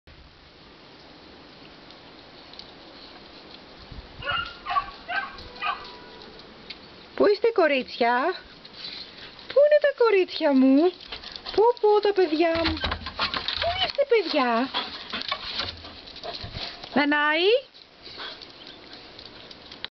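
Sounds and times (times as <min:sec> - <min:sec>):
dogs moving on tiled path: 0:01.7 - 0:19.9
dog barking: 0:04.2 - 0:06.1.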